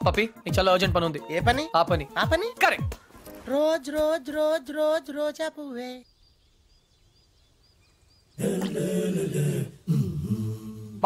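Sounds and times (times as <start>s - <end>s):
loud rough vocal sound: 8.4s - 11.0s
man's drawn-out pitched syllables: 8.4s - 11.0s.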